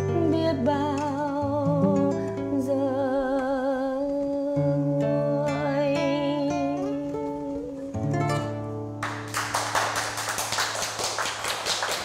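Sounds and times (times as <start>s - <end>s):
applause: 9.0s - 12.0s.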